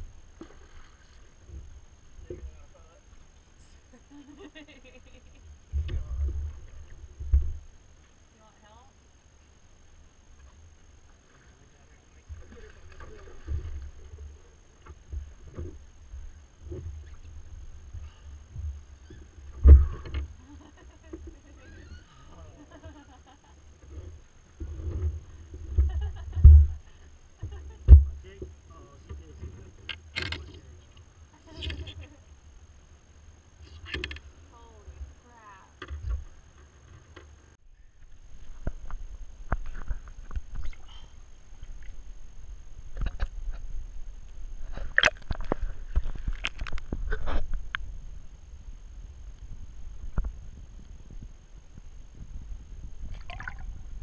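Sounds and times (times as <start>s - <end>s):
low rumble of water movement: 0.0s - 54.0s
sharp clicks and knocks underwater: 24.6s - 28.2s, 42.9s - 43.7s, 44.6s - 47.9s.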